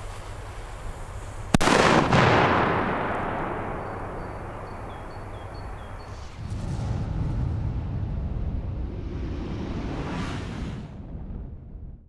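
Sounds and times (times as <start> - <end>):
firecracker bang: 1.6 - 5.3, 6.1 - 8.8
long echo: 1.6 - 6.0.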